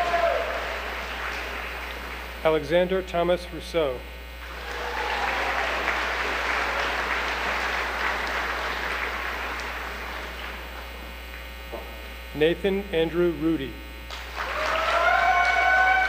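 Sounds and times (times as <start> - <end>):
audience applause: 0.0 - 2.5, 4.4 - 11.1, 14.1 - 16.0.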